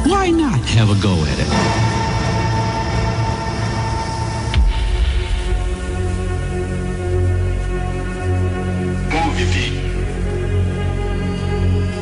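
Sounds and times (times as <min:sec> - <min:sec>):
steady drone of held tones: 0:00.6 - 0:08.0.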